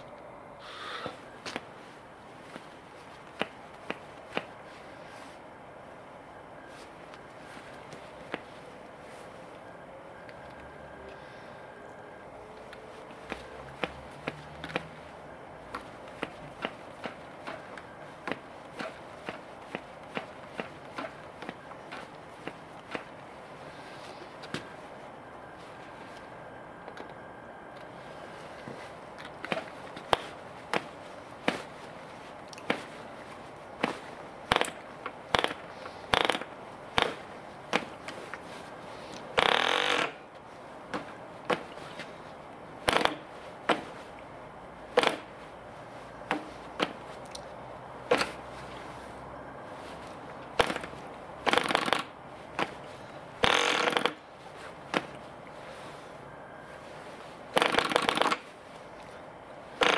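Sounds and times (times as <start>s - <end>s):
propeller flicked by hand: 2.4s - 4.6s, 12.6s - 23.6s, 27.8s - 40.2s, 42.8s - 44.2s, 44.9s - 45.4s, 50.3s - 55.3s, 57.5s - 59.1s.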